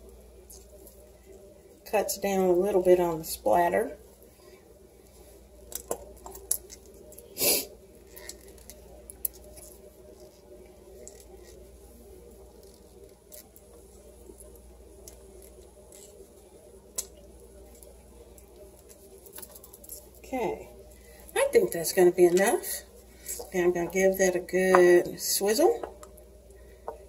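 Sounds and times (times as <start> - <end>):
steady low hum: 0.0 - 27.0
metal tube crinkling: 8.0 - 25.0.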